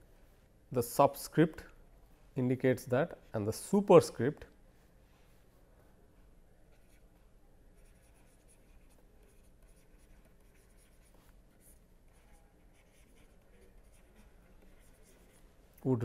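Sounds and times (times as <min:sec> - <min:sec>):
stylus scratching on pen tablet: 0:06.7 - 0:15.5.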